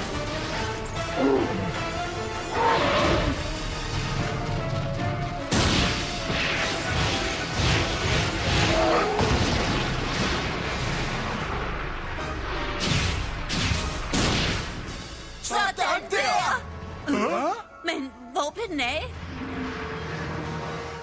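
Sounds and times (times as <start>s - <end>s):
dramatic background music: 0.0s - 21.0s.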